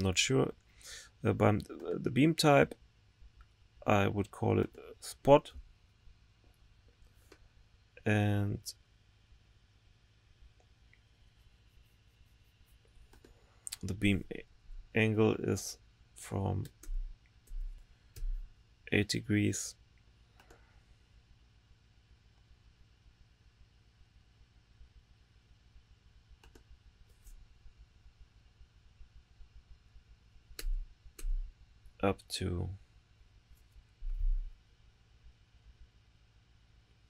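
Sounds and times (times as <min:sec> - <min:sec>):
person speaking: 0:13.7 - 0:19.8
faint computer clicks: 0:20.3 - 0:20.6, 0:26.4 - 0:27.4
computer clicks: 0:26.4 - 0:26.7.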